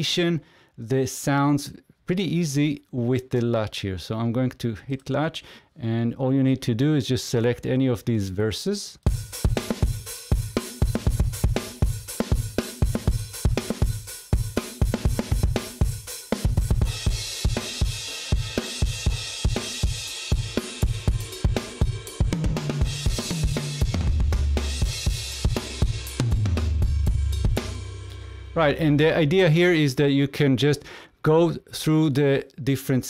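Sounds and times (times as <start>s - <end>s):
rock drum groove: 9.0s - 30.0s.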